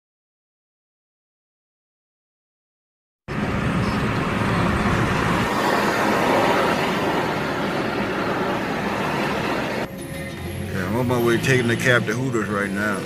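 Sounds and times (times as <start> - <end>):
road vehicle engine and tyre noise: 3.3 - 13.0.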